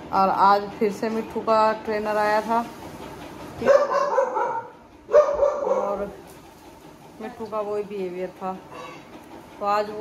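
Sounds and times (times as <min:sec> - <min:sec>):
dog barking: 0:03.6 - 0:06.1.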